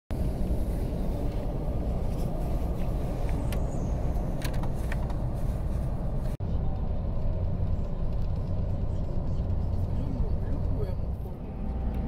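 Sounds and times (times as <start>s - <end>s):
bus engine rumble: 0.1s - 12.0s.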